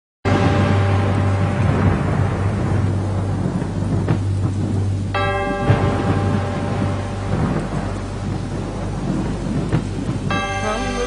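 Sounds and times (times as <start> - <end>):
rain hiss: 0.3 - 11.0
thunder rumbling: 0.3 - 11.0.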